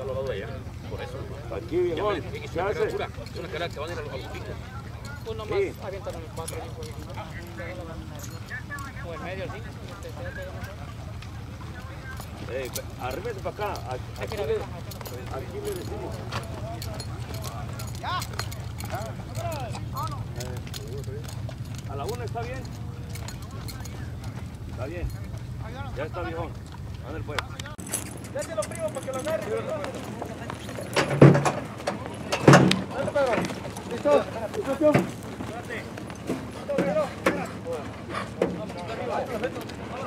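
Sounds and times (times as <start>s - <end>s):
hooves clip-clopping on dirt: 0.0s - 40.0s
people talking: 0.0s - 40.0s.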